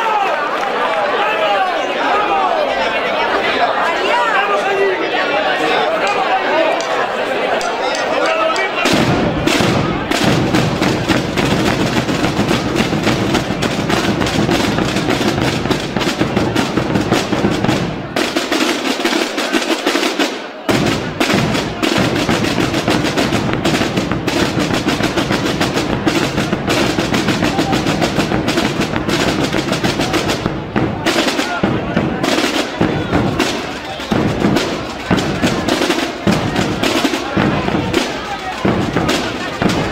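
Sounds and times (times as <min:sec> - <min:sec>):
snare drums playing: 0:08.8 - 0:39.9
bass drums playing: 0:08.9 - 0:18.2, 0:20.7 - 0:39.9.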